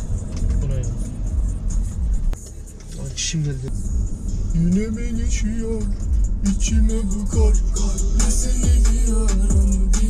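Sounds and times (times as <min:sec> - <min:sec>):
low car rumble: 0:00.0 - 0:10.0.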